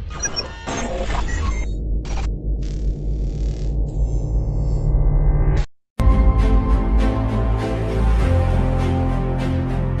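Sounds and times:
deep bass drone: 0:01.8 - 0:10.0.

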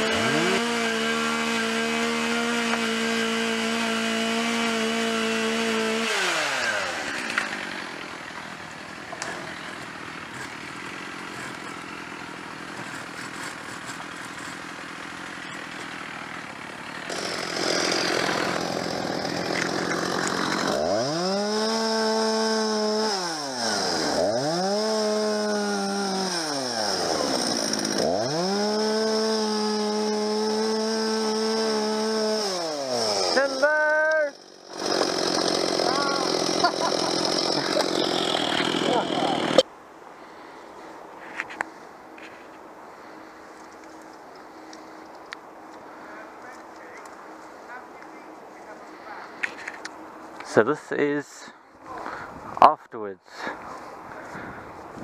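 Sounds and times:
chainsaw cutting stems: 0:00.0 - 0:39.7.

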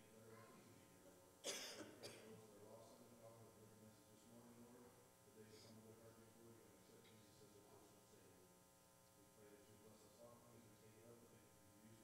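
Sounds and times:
person coughing: 0:01.4 - 0:02.4.

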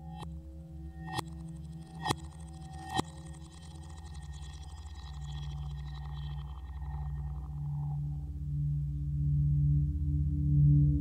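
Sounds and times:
low electronic drone: 0:00.0 - 0:11.0.

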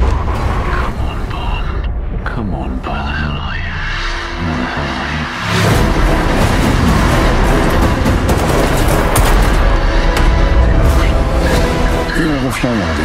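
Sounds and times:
dramatic music: 0:00.0 - 0:13.0
low rumble: 0:00.0 - 0:13.0.

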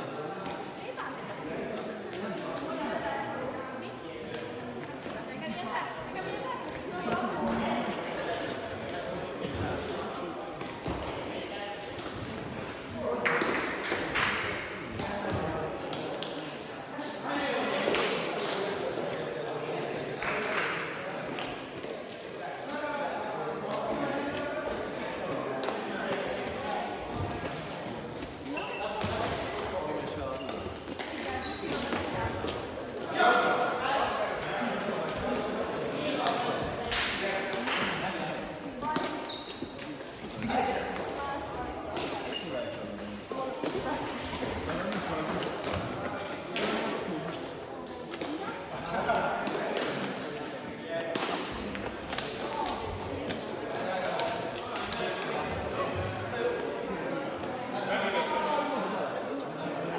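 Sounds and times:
people talking: 0:00.0 - 0:12.1, 0:12.9 - 0:39.4, 0:40.0 - 0:59.9
voices echoing in a hall: 0:00.0 - 0:59.9.

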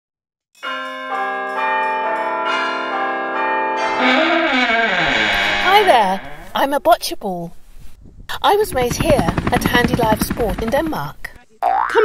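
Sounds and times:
church bells ringing: 0:00.6 - 0:04.1.

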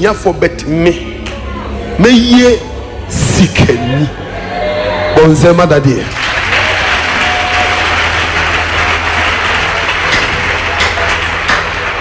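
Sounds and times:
preacher shouting: 0:03.6 - 0:05.6, 0:06.4 - 0:09.7
congregation applauding: 0:05.8 - 0:12.0.

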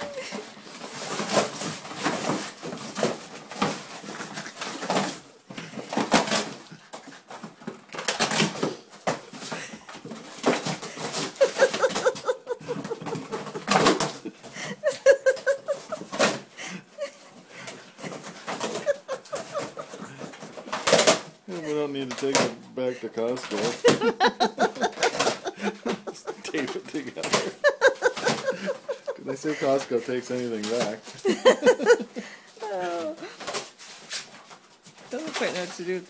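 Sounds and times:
dog chewing cardboard: 0:01.0 - 0:14.2.

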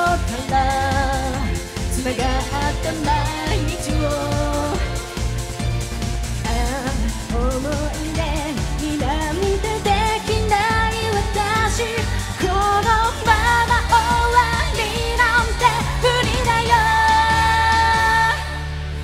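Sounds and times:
woman singing into a microphone: 0:00.0 - 0:05.2, 0:06.4 - 0:19.0
backing track with bass and drums: 0:00.0 - 0:19.0.

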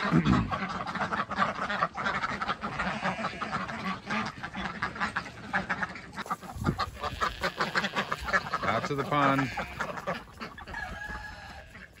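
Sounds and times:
ducks quacking: 0:00.0 - 0:12.0.

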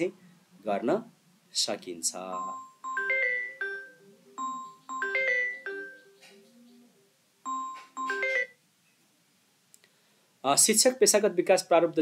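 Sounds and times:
faint click: 0:09.7 - 0:10.0.

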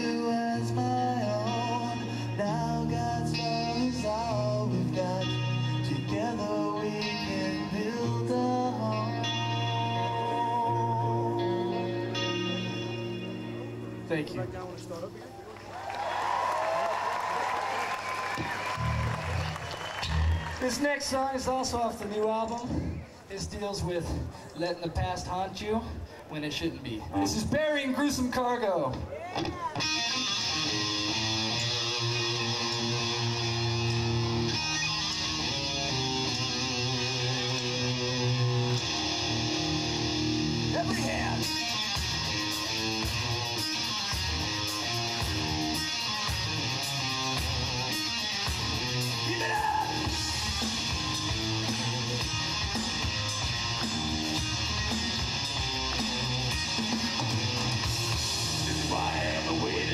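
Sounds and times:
person singing: 0:00.0 - 0:12.8, 0:58.7 - 0:59.9
distorted electric guitar riff: 0:00.0 - 0:15.1, 0:29.4 - 0:59.9
drums and bass: 0:30.7 - 0:59.9.

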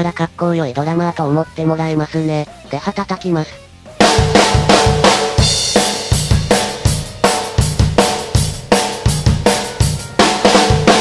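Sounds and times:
bass drum kicks: 0:04.0 - 0:11.0
snare drum flams: 0:04.0 - 0:11.0.

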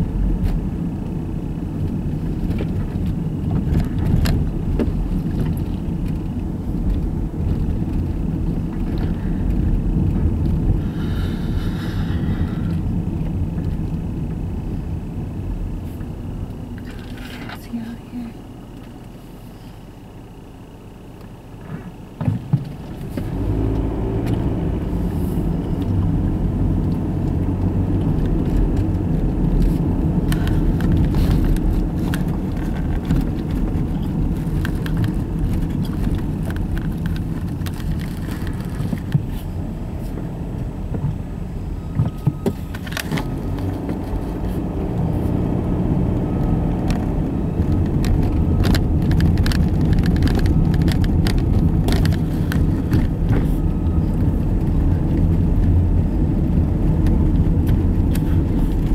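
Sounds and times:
car engine and tyre rumble: 0:00.0 - 0:58.9
small clicks and rattles: 0:26.8 - 0:39.2, 0:46.8 - 0:53.4.

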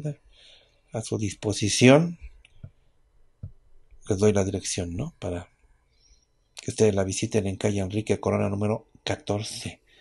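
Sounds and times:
man speaking: 0:00.0 - 0:00.2, 0:01.0 - 0:02.4, 0:04.0 - 0:05.5, 0:06.6 - 0:09.9.

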